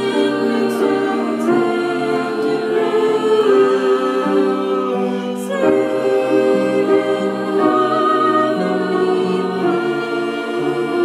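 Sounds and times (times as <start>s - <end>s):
girls singing long held notes: 0.0s - 11.0s.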